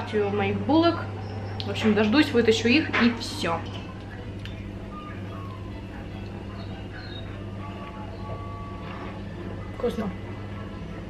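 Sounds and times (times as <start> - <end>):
faint background music: 0.0 - 11.0
kitchen appliance humming: 0.0 - 11.0.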